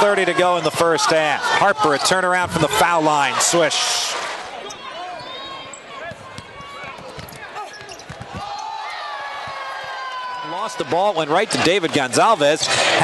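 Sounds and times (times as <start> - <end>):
arena crowd noise: 0.0 - 13.0
basketball bouncing on hardwood: 6.1 - 8.5.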